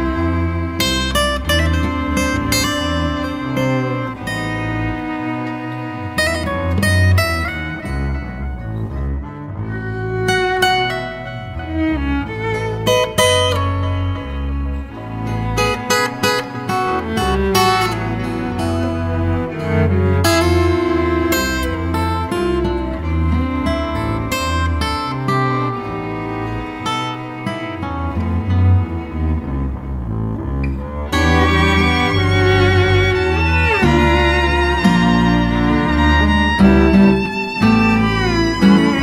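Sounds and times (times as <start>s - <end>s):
string quintet chamber music: 0.0s - 39.0s.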